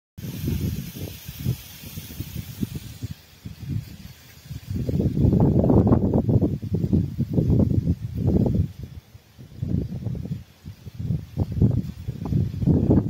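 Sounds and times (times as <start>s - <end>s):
faint high hiss: 0.2s - 13.0s
wind buffeting microphone: 0.2s - 13.0s.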